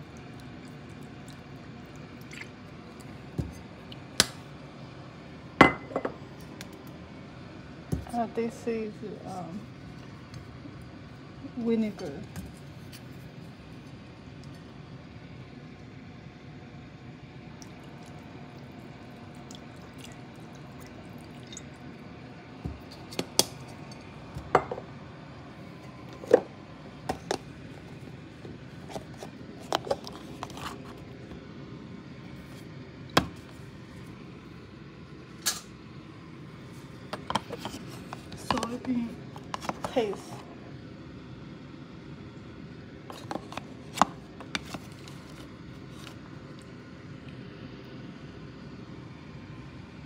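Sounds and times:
bottles and cookware clinking: 5.6s - 6.2s.

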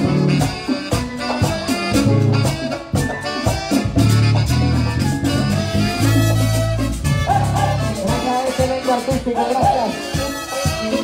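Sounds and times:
bass guitar notes: 0.0s - 11.0s
brass: 0.0s - 11.0s
drums: 0.0s - 11.0s
live band playing latin dance music: 0.0s - 11.0s.

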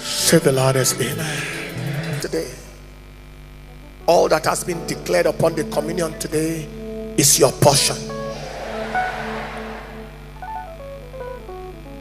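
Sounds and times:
soft background music: 3.7s - 8.4s
broad swell of noise: 8.1s - 10.7s.

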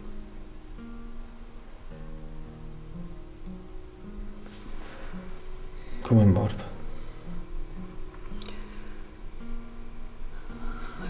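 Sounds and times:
held low music notes: 0.0s - 11.0s.

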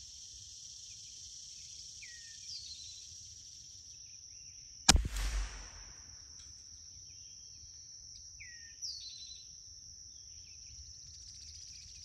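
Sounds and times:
sharp rifle gunshot: 4.9s - 6.2s.

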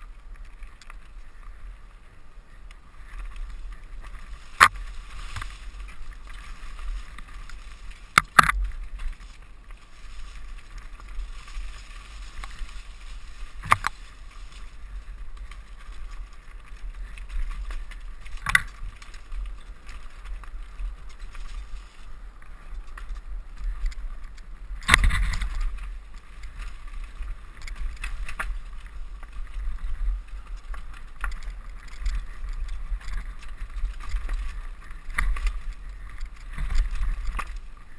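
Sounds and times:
bike rumbling and rattling: 0.0s - 37.9s
tyre noise on dirt: 0.0s - 37.9s.

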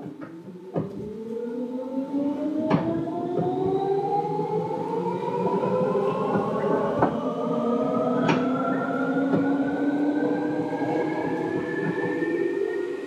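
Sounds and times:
electric train motors whining: 0.3s - 13.0s.

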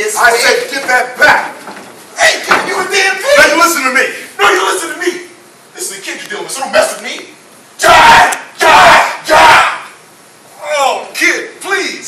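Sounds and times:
man yelling: 2.2s - 5.3s, 7.8s - 10.0s.

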